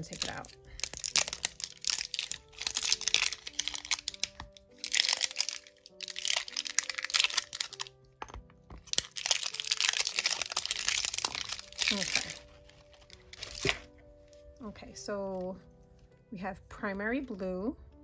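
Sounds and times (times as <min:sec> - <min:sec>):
plastic packaging crinkling: 0:00.0 - 0:14.5
soft background music: 0:00.0 - 0:18.0.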